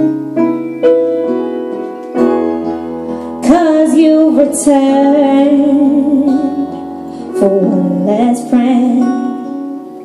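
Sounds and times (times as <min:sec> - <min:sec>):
acoustic guitar chord: 0:00.0 - 0:10.0
piano: 0:00.0 - 0:10.0
woman singing with vibrato: 0:03.4 - 0:09.8.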